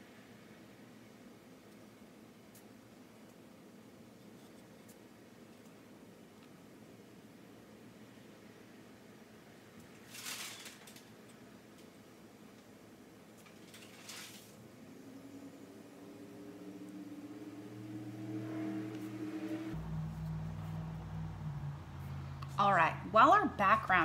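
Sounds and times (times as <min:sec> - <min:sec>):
low mechanical hum: 0:00.0 - 0:24.0
art supplies rustling: 0:09.9 - 0:11.9, 0:13.3 - 0:14.6.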